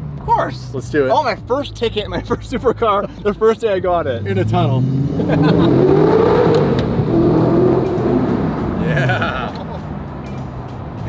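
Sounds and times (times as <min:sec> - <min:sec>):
car engine accelerating hard: 0:04.0 - 0:09.7.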